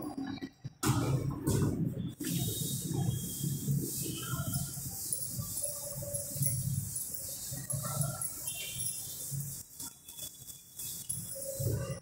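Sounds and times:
duster rubbing on chalkboard: 1.5s - 11.8s.

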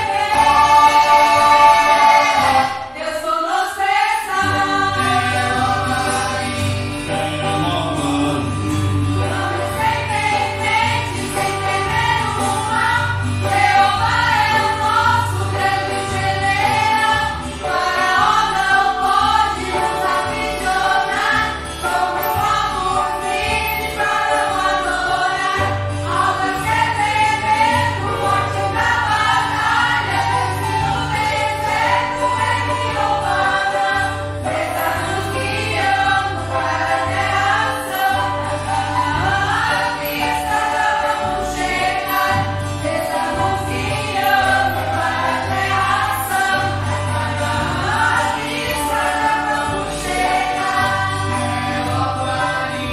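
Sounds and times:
congregation singing a hymn: 0.0s - 52.9s.

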